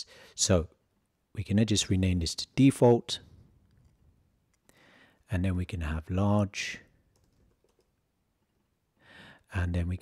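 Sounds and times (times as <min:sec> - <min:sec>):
computer keyboard key clicks: 0:07.1 - 0:07.9.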